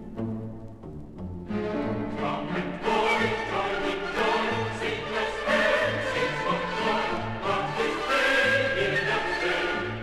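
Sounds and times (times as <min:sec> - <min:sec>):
orchestral accompaniment: 0:00.0 - 0:10.0
choir singing a carol: 0:01.8 - 0:10.0.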